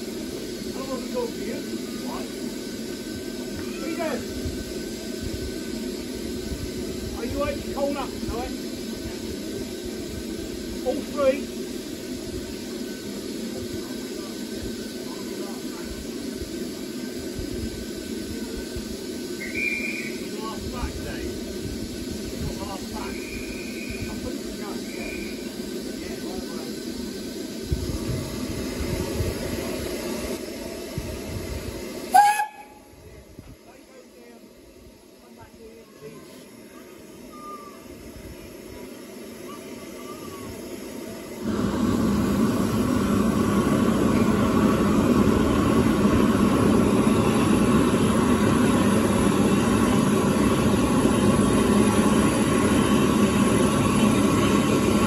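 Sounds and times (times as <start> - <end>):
steam hissing: 0.0 - 55.0
faint voices: 33.0 - 41.5.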